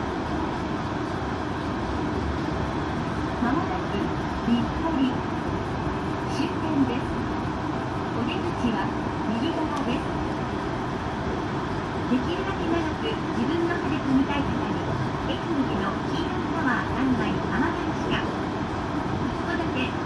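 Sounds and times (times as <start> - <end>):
train cabin running noise: 0.0 - 20.0.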